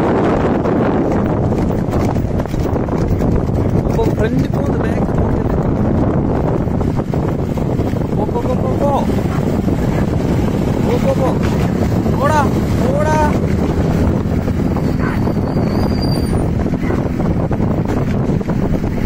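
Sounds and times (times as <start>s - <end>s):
wind and road noise: 0.0s - 19.0s
high whistle: 15.0s - 16.5s.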